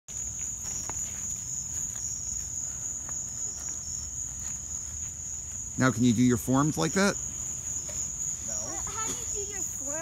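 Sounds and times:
insects chorus: 0:00.1 - 0:10.0.

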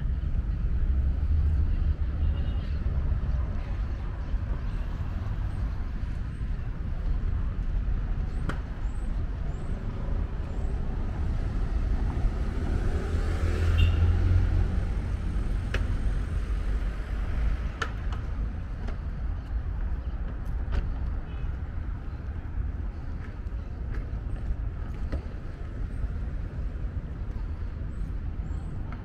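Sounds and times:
low traffic rumble: 0:00.0 - 0:29.0
car passing: 0:11.2 - 0:18.4.

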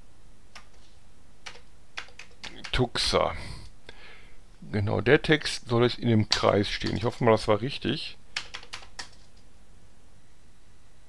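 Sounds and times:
keyboard keys clicking: 0:01.4 - 0:02.8, 0:08.4 - 0:09.5.

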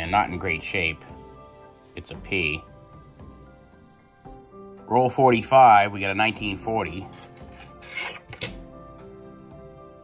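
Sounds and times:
faint background music: 0:00.0 - 0:10.0
coins clicking and scraping on wood: 0:07.1 - 0:08.6.

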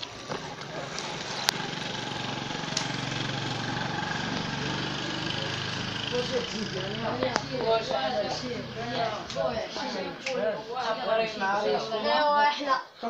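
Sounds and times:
steady motor hum: 0:00.0 - 0:09.2.

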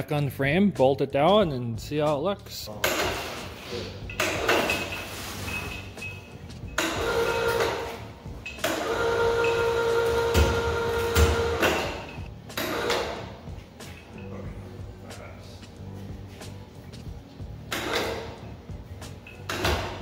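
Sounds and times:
chain hoist motor whine: 0:05.5 - 0:13.0.

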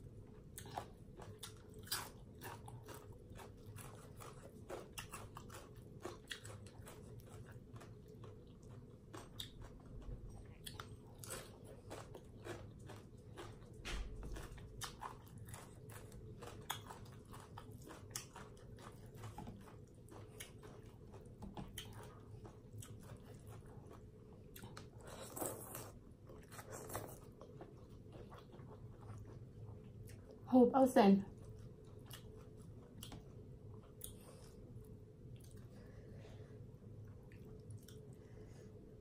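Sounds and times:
person chewing crunchy food: 0:00.0 - 0:30.4, 0:31.3 - 0:36.2, 0:37.1 - 0:38.3.

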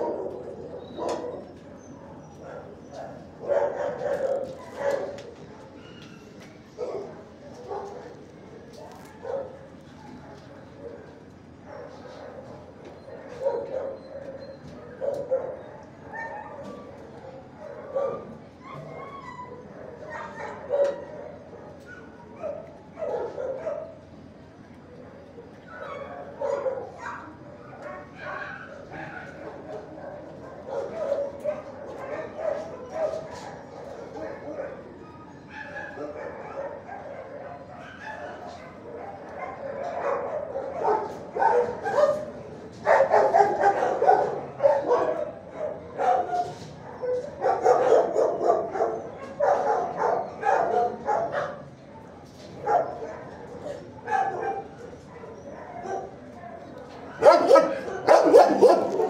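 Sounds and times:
dogs barking and yipping: 0:00.0 - 0:08.2, 0:08.8 - 0:09.7, 0:11.6 - 0:24.0, 0:25.7 - 0:51.7, 0:52.6 - 0:56.3, 0:57.0 - 0:59.0.

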